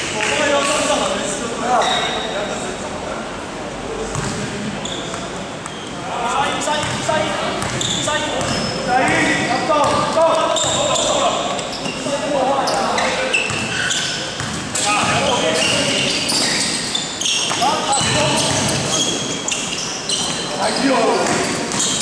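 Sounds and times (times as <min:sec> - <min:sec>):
sneakers squeaking on floor: 0:01.7 - 0:02.4, 0:04.1 - 0:22.0
players calling out: 0:06.0 - 0:22.0
basketball bouncing: 0:06.8 - 0:09.2, 0:09.8 - 0:10.9, 0:13.5 - 0:13.7, 0:14.4 - 0:14.8, 0:17.4 - 0:19.0, 0:21.2 - 0:22.0.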